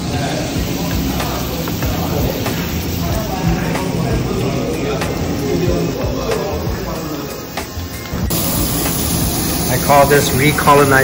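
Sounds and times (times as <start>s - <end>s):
background music: 0.0s - 11.0s
meat sizzling on a grill: 0.0s - 11.0s.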